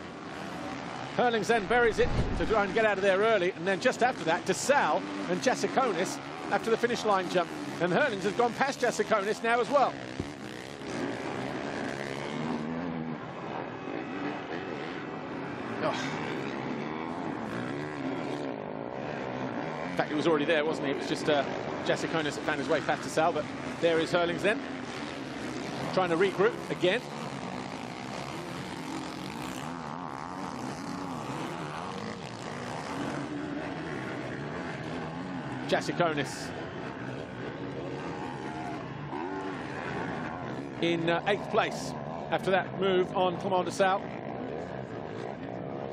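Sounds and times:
motocross bike engines revving: 0.0s - 45.9s.

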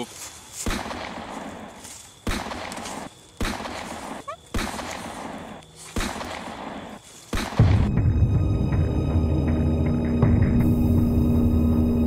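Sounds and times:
rifle shot: 0.6s - 1.6s, 2.2s - 7.9s.

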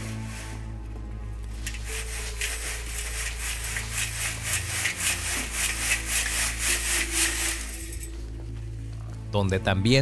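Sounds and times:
soil scraping through sifting screen: 0.0s - 8.2s.

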